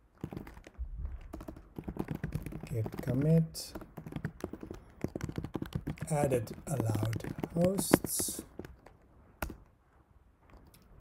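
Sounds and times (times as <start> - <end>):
sharp keyboard keystroke: 0.0 - 9.7.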